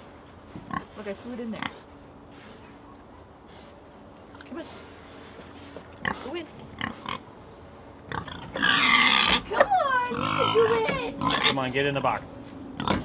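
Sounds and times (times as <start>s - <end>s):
pigs grunting: 6.0s - 7.3s, 8.1s - 11.8s, 12.8s - 13.0s
pig squealing loudly: 8.1s - 11.7s.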